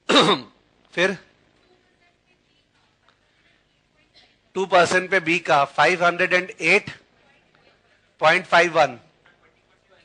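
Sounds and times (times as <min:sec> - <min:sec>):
man clearing throat: 0:00.0 - 0:00.6.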